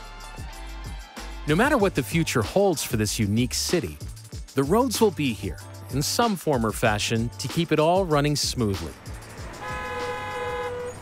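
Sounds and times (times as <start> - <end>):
street traffic: 8.0 - 11.0
vehicle horn honking: 9.5 - 11.0.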